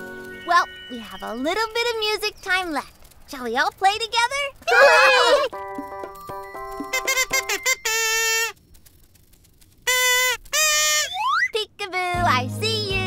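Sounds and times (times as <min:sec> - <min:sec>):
toy xylophone notes: 0:05.6 - 0:07.8
reedy toy pipe notes: 0:06.0 - 0:08.6.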